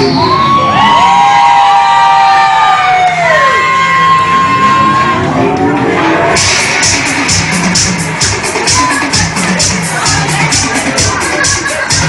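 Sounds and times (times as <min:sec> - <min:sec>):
siren-like swooping tones: 0:00.0 - 0:07.4
music low end: 0:00.0 - 0:12.0.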